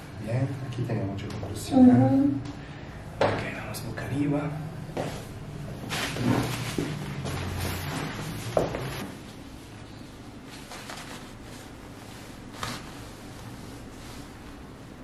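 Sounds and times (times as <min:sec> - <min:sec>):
paper rustling: 0:05.9 - 0:09.1, 0:10.5 - 0:14.6.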